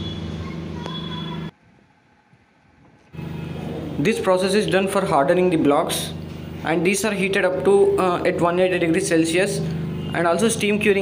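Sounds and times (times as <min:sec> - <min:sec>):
factory machinery humming: 0:03.1 - 0:11.0.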